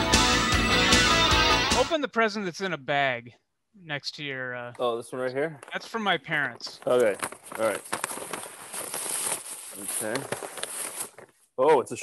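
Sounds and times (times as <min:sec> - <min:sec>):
tissue paper rustling: 0:06.8 - 0:11.3.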